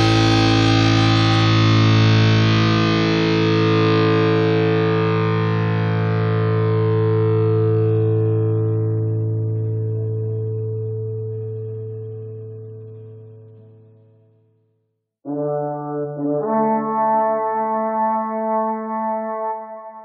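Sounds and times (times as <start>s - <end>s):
distorted electric guitar chord ringing: 0.0s - 13.8s.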